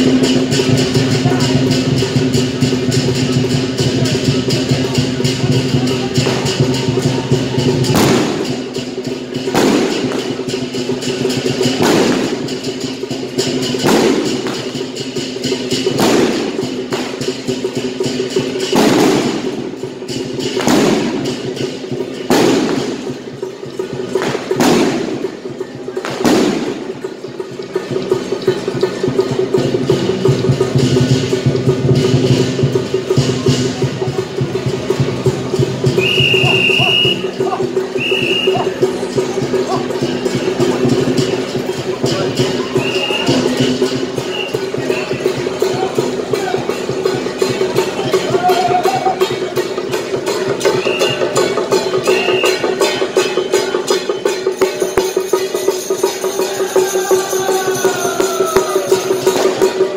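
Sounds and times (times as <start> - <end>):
high whistle-like tones: 35.9 - 37.3, 38.0 - 38.8, 42.8 - 43.4, 44.2 - 44.7, 50.6 - 51.4, 52.1 - 52.7.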